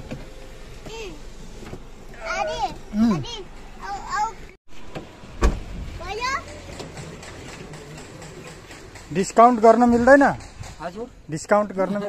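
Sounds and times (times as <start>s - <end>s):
car door shutting: 4.8s - 5.8s.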